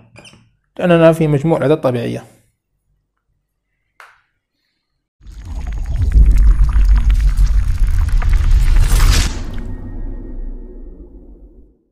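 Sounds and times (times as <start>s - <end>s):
deep crackling rumble: 5.2s - 11.8s
whoosh: 5.4s - 11.9s.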